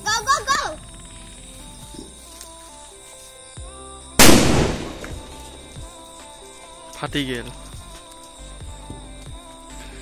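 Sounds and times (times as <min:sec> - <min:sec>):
firecracker bang: 0:04.2 - 0:05.3.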